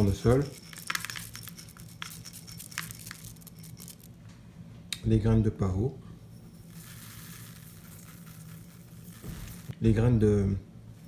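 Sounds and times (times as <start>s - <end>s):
seeds pouring: 0.0s - 4.1s, 6.7s - 9.7s.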